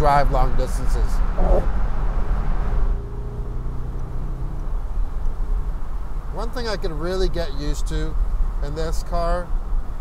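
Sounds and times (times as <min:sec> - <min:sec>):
road and wind noise: 0:00.0 - 0:10.0
low engine hum: 0:00.2 - 0:10.0
deep rumble: 0:01.2 - 0:10.0.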